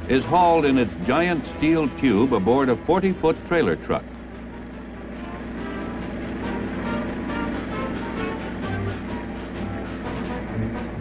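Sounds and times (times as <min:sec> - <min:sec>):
film score music held notes: 0:00.0 - 0:11.0.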